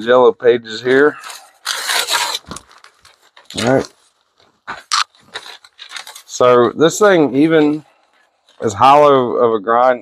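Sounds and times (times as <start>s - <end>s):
thin paper rustling: 1.0s - 6.5s.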